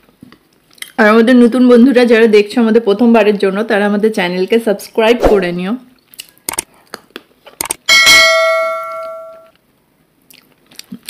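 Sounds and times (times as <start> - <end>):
notification bell ding: 7.9 - 9.5.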